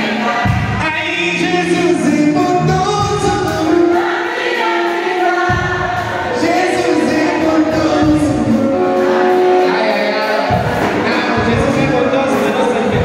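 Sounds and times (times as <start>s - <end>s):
man singing into a microphone: 0.0s - 4.0s, 6.2s - 13.0s
amplified gospel accompaniment: 0.0s - 13.0s
backing voices singing along: 0.0s - 13.0s
deep bass: 0.5s - 3.9s, 10.5s - 13.0s.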